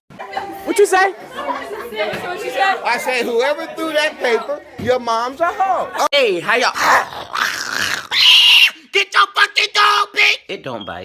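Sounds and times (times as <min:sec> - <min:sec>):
person screaming: 0:07.2 - 0:08.9.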